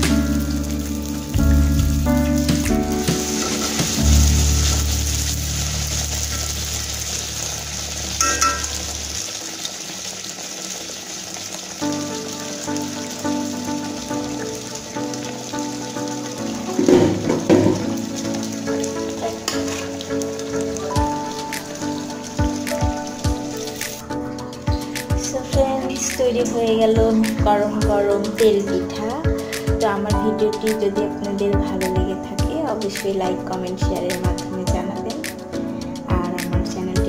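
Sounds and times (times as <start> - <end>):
instrumental music: 0.0 - 9.4, 11.8 - 37.0
batter sizzling in hot oil: 0.0 - 25.5.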